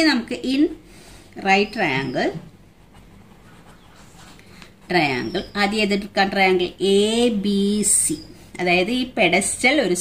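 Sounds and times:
person speaking: 1.4s - 8.9s
pen scratching on paper: 2.8s - 5.8s.

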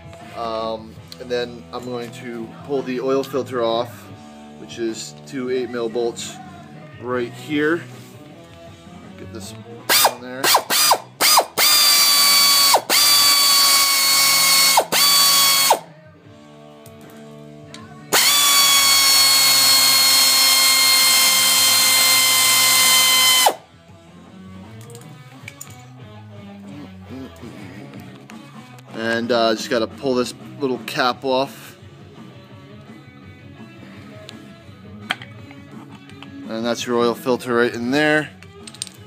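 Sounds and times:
handheld power tool motor whining: 9.9s - 15.8s, 18.1s - 23.6s.

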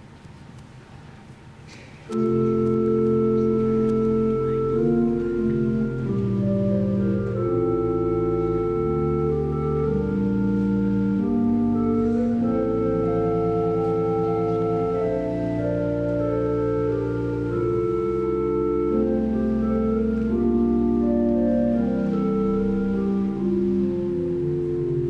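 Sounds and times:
pipe organ chords: 2.1s - 25.0s.

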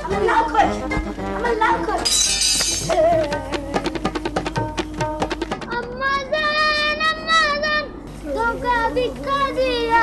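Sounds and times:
boy singing long high note: 2.8s - 10.0s.

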